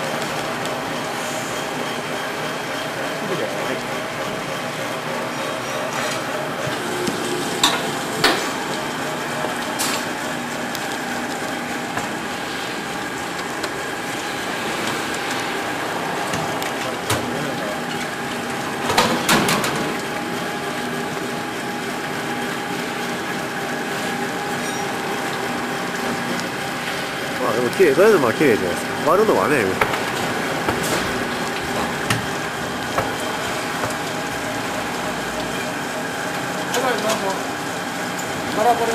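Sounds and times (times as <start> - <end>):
fish filleting machine humming: 0.0 - 38.9.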